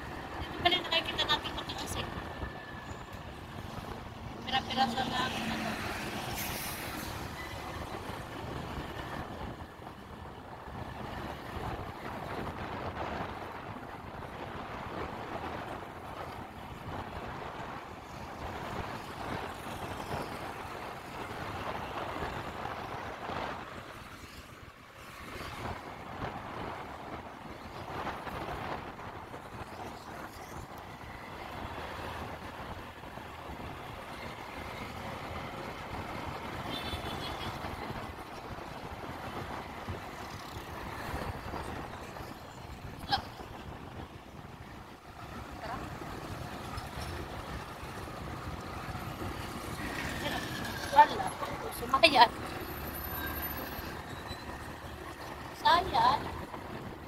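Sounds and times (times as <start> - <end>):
wind rushing over microphone: 0.0 - 52.9
road noise: 0.0 - 57.0.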